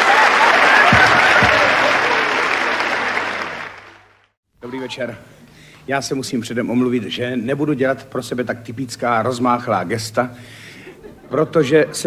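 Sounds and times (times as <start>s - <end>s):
audience applauding: 0.0s - 4.3s.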